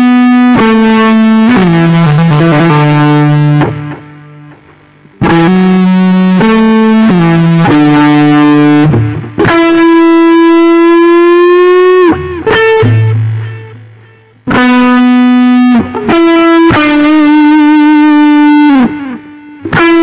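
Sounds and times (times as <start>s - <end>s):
distorted electric guitar lead: 0.0s - 20.0s.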